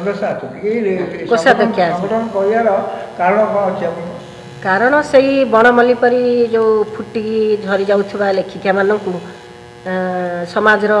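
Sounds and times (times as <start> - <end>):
woman talking into a microphone: 4.6 - 9.3, 9.9 - 11.0.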